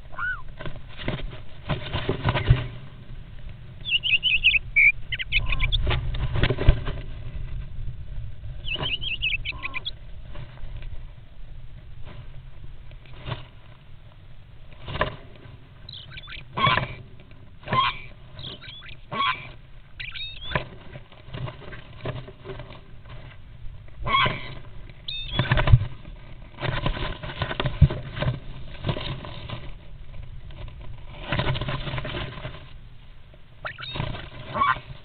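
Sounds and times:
wing flaps: 0.0s - 3.1s, 3.8s - 7.7s, 24.0s - 32.8s, 33.6s - 35.0s
birds scuffling: 0.0s - 35.0s
short high bird squeaks: 0.1s - 0.5s, 3.8s - 5.8s, 8.6s - 9.9s, 15.9s - 17.0s, 17.7s - 20.6s, 24.1s - 25.6s, 33.6s - 34.9s.

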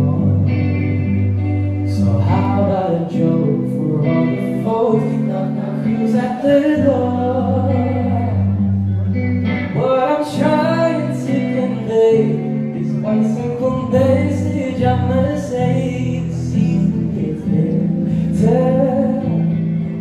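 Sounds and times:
electric guitar: 0.0s - 20.0s
man singing into a microphone: 0.0s - 20.0s.

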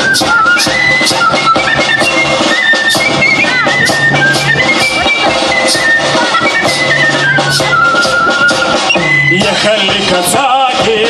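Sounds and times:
drums: 0.0s - 11.0s
wind instrument melody: 0.0s - 11.0s.

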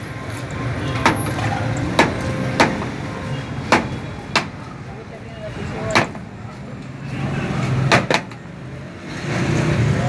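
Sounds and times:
street traffic rumble: 0.0s - 10.0s.

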